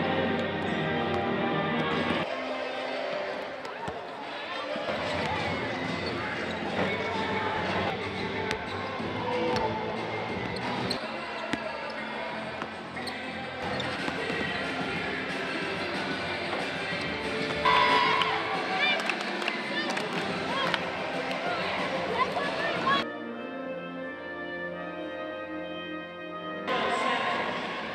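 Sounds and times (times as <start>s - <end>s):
indistinct voices: 0.0s - 23.0s
music: 0.0s - 27.9s.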